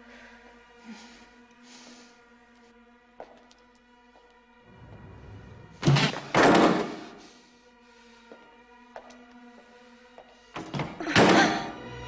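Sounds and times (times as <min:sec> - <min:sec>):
tense film music: 0:00.0 - 0:12.0.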